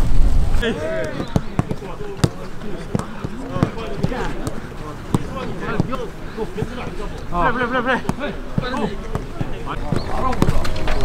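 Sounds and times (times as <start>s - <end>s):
players calling: 0.6s - 11.0s
football kicked thuds: 1.1s - 6.0s, 8.0s - 10.7s.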